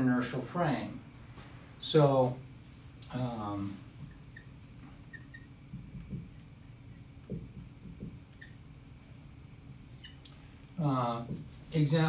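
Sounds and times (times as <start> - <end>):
marker squeaking on whiteboard: 4.0 - 8.7, 10.0 - 10.2.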